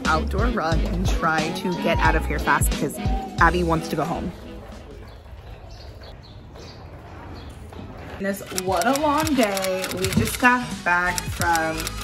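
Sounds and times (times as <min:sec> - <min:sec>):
small birds chirping: 0:04.4 - 0:09.4.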